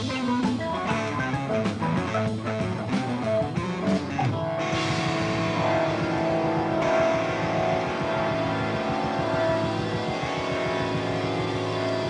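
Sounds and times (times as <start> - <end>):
song guitars: 0.0 - 12.0.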